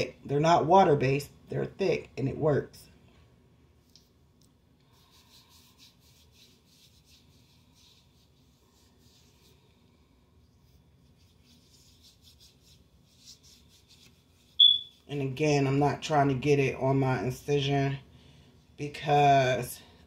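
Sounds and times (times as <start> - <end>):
hands rubbing lotion: 4.8 - 9.8, 10.4 - 14.8.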